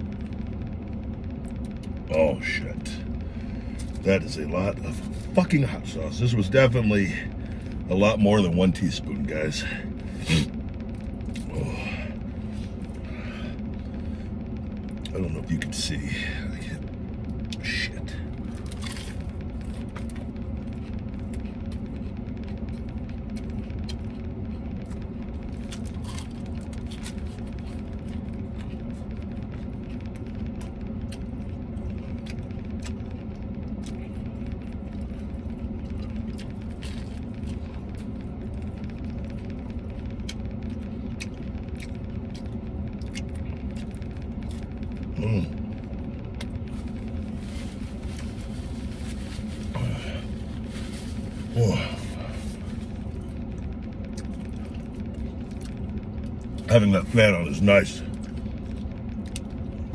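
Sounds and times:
vehicle idling rumble: 0.0 - 59.9
chewing crunchy taco shell: 2.8 - 59.9.

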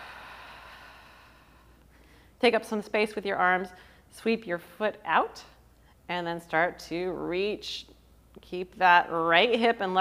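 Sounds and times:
person exhaling: 0.0 - 2.3.

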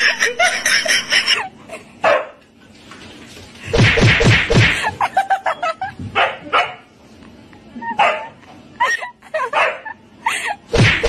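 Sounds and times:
dog barking and yipping: 8.0 - 8.3, 9.5 - 9.9.

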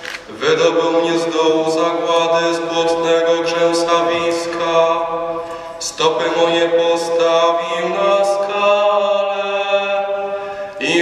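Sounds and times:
young man chanting: 0.3 - 11.0.

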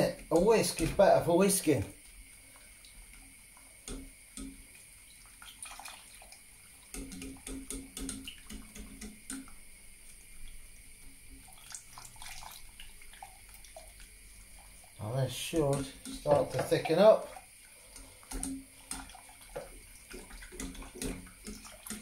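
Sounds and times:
liquid sloshing: 5.1 - 9.5, 11.2 - 22.0
whisk clicking against pan: 6.9 - 9.6, 15.5 - 22.0.

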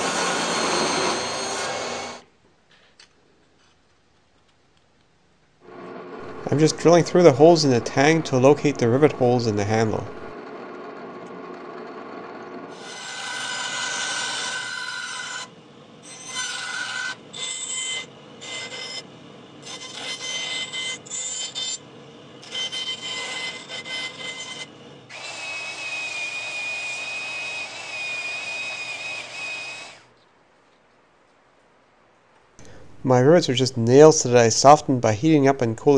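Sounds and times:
bandsaw cutting wood: 0.0 - 2.2, 5.7 - 10.3, 12.7 - 19.0, 19.6 - 21.8, 22.4 - 30.1
drill press drilling wood: 0.0 - 2.2, 5.7 - 10.3, 22.4 - 30.0.

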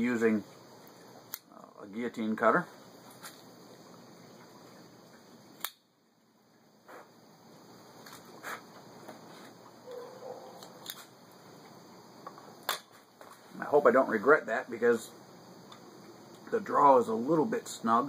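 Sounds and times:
cigar cutter clicking: 5.6 - 5.8.

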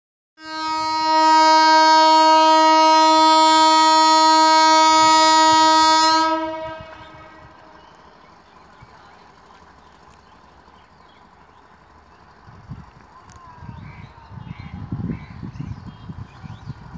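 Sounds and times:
train horn blast: 0.4 - 7.8.

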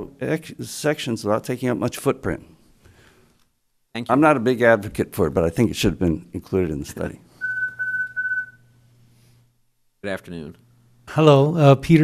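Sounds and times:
electronic timer beep: 7.4 - 8.7.

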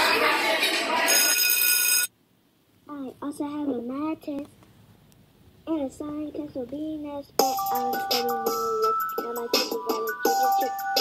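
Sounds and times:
electronic ringing tone: 1.1 - 2.1.

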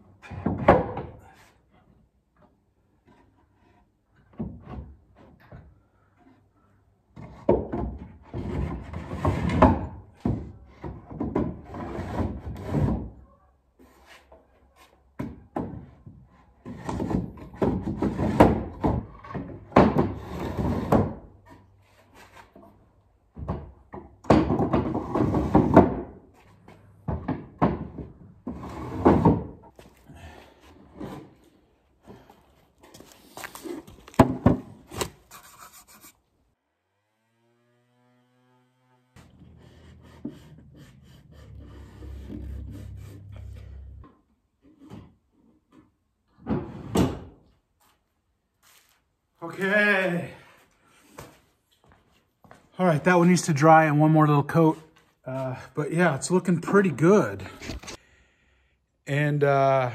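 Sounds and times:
wooden drawers scraping: 27.1 - 29.7.

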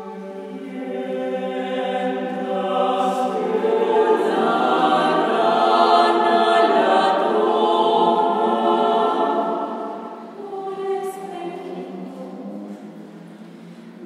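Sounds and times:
choir singing a cappella: 0.0 - 14.0.

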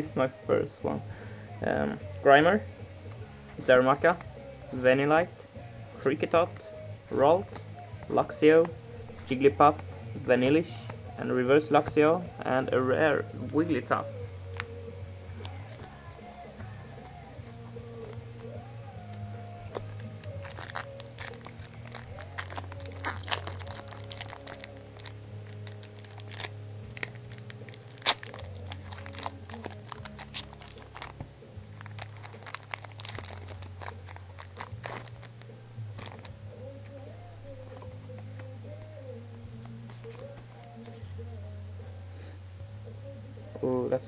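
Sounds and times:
quiet background music: 0.0 - 44.0
foil wrapper crinkling and tearing: 19.8 - 35.4, 36.0 - 36.3.

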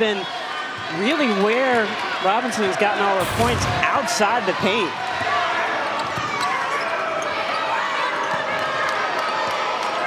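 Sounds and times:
murmur of arena crowd: 0.0 - 10.0.

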